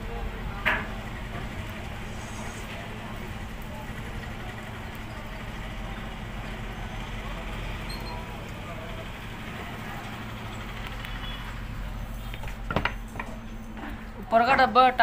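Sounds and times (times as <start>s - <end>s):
faint voices: 0.0s - 12.7s.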